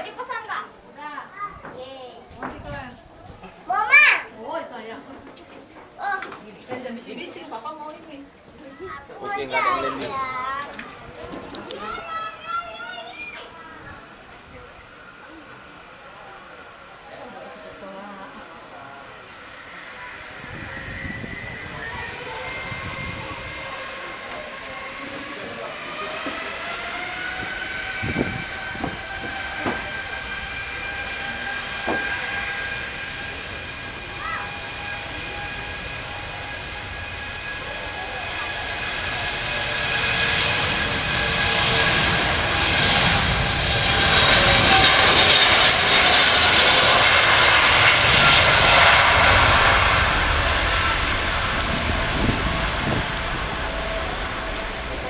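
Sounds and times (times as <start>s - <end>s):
jet engine roar: 0.0s - 55.0s
jet engines whining: 0.0s - 55.0s.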